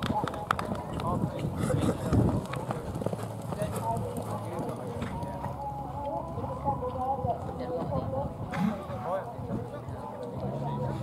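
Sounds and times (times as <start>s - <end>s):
background voices: 0.0s - 11.0s
pony hoofbeats on sand: 0.0s - 11.0s.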